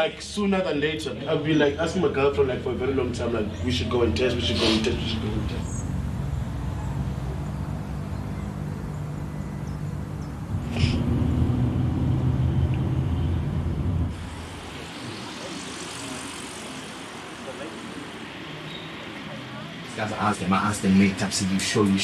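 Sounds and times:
vehicle engine droning: 0.0s - 22.0s
road noise inside moving car: 0.3s - 22.0s
short hiss: 4.5s - 4.9s.

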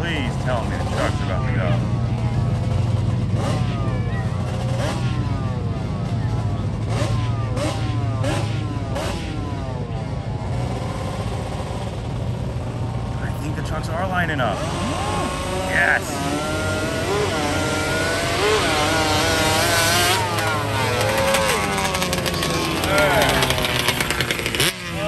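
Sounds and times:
low engine drone: 0.0s - 25.0s
racing engines revving: 0.0s - 25.0s.

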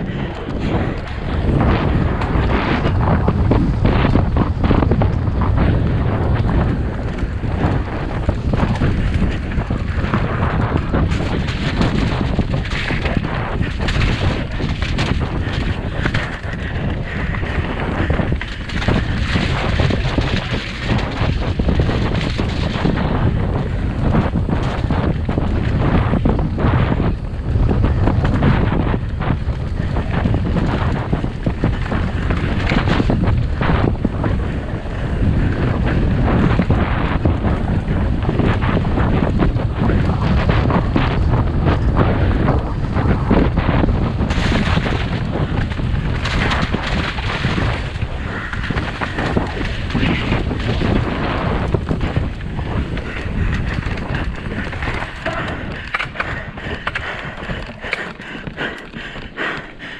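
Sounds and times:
tyres rattling on dirt and rock: 0.0s - 59.9s
wind rush on microphone: 0.0s - 59.9s.

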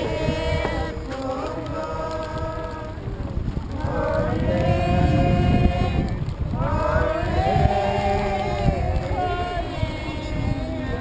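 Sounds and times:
group singing long notes: 0.0s - 11.0s
wind rumble on microphone: 0.0s - 11.0s.

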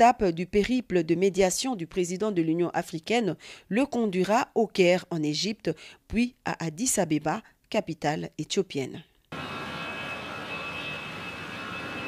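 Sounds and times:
aircraft engine running: 9.3s - 12.0s.

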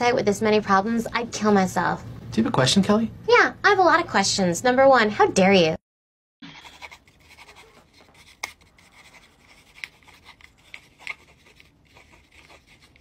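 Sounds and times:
pen scratching on paper: 6.6s - 13.0s.

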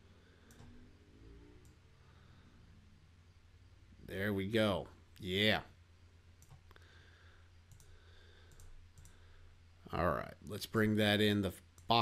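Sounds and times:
low steady hum: 0.0s - 12.0s
computer mouse clicks: 0.4s - 0.8s, 1.6s - 1.8s, 6.4s - 6.8s, 7.7s - 9.2s.

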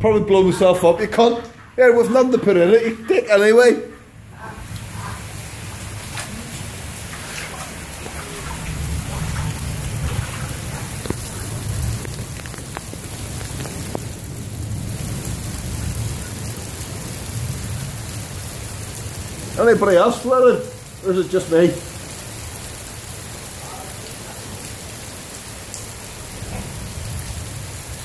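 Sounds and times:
heavy rain pouring: 0.0s - 28.0s
low rumble of thunder: 6.4s - 19.6s
sharp drip ticks: 7.1s - 16.4s.

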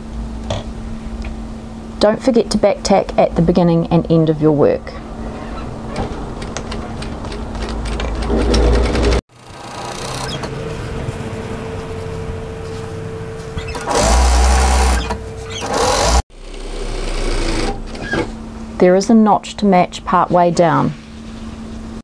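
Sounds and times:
sewing machine stitching: 8.2s - 10.5s, 13.7s - 16.2s.

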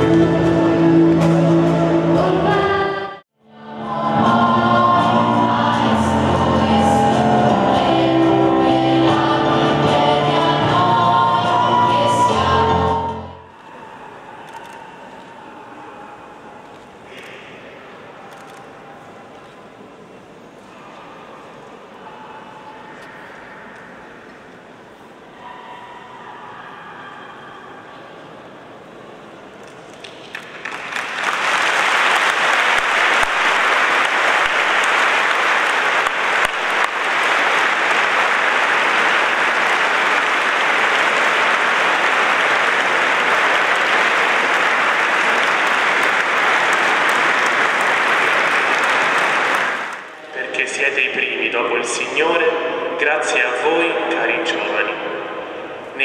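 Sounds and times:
congregation clapping: 29.6s - 51.0s.

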